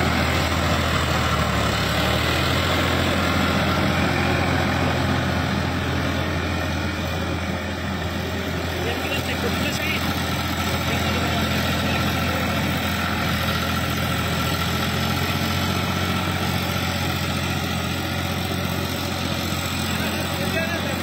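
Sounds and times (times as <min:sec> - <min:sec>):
rotary tiller in wet mud: 0:00.0 - 0:21.0
tractor diesel engine under load: 0:00.0 - 0:21.0.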